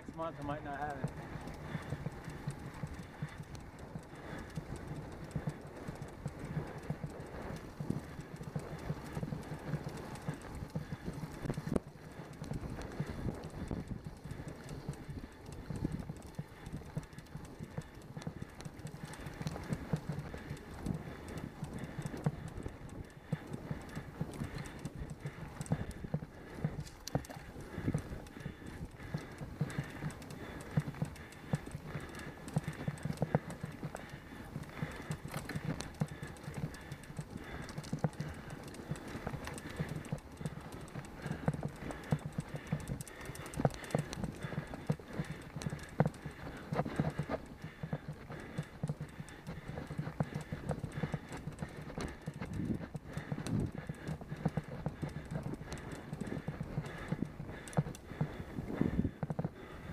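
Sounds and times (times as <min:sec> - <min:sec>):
bicycle rolling over rough asphalt: 0:00.0 - 0:59.9
wind: 0:00.0 - 0:59.9.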